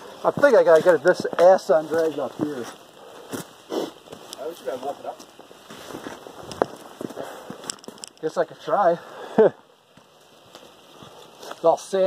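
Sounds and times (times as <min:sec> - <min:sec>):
boots crunching on sand and grit: 0:00.0 - 0:07.7.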